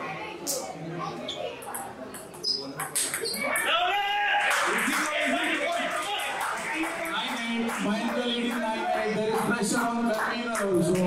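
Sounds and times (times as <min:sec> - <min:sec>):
table tennis ball clicking: 0:01.6 - 0:03.4
spectators shouting: 0:03.4 - 0:09.2
spectators clapping: 0:04.3 - 0:11.0.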